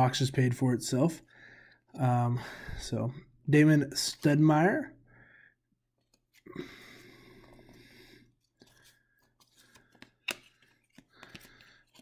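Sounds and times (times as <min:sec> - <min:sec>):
cards rustling together: 0:06.0 - 0:06.5, 0:08.4 - 0:12.0
cards clicking on wooden table: 0:09.6 - 0:12.0.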